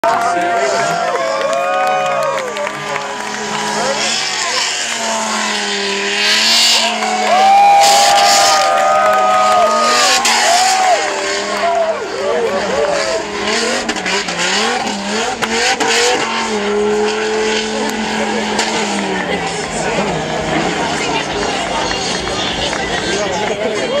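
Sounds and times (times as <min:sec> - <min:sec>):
car engine revving: 0:00.0 - 0:24.0
voices: 0:00.0 - 0:24.0.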